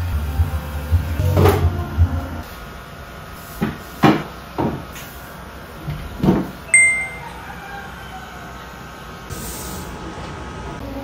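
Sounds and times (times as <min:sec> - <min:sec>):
short high ping: 0:06.7 - 0:07.4.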